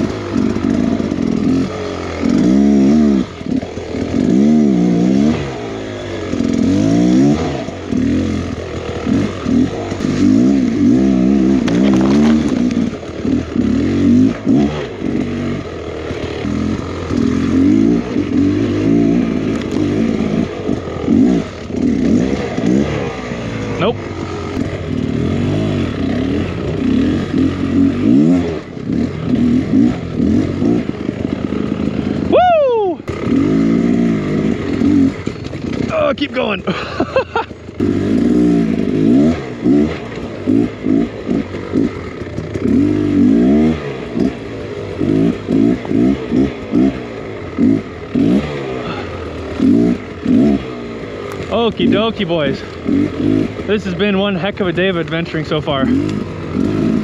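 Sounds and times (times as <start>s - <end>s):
motorbike engine revving: 0.0s - 57.0s.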